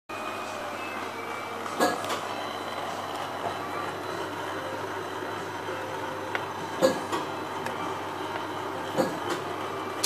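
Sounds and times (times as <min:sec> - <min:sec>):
printing press running: 0:00.1 - 0:10.0.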